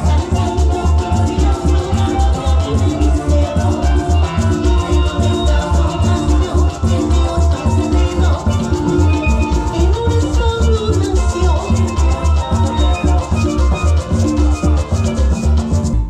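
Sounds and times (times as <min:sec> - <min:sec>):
live band playing: 0:00.0 - 0:16.0
strummed string instrument: 0:00.0 - 0:16.0.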